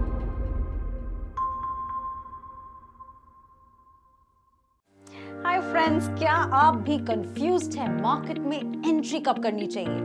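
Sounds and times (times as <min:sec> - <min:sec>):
ringing chime: 0:01.4 - 0:04.7.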